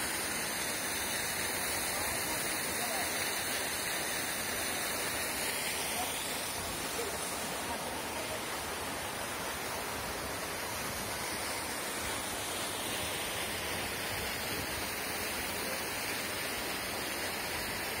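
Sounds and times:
waterfall rushing: 0:00.0 - 0:18.0.

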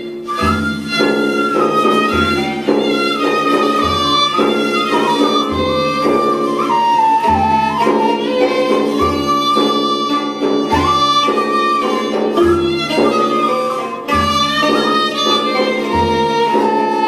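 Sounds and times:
sliding held melody line: 0:00.0 - 0:17.0
deep drum beat: 0:00.1 - 0:17.0.

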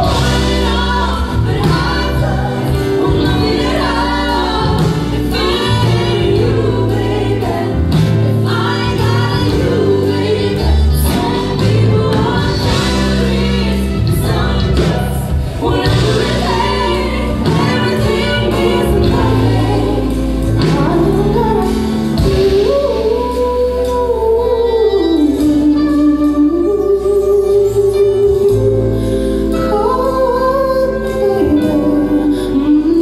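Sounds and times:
drums: 0:00.0 - 0:33.0
electric bass: 0:00.0 - 0:33.0
keyboard piano: 0:00.0 - 0:33.0
woman singing lead vocal: 0:00.0 - 0:33.0
women singing backing harmonies: 0:00.0 - 0:33.0.

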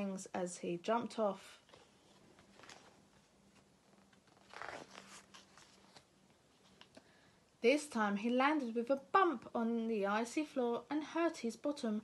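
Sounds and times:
paper page turning: 0:01.6 - 0:06.9.

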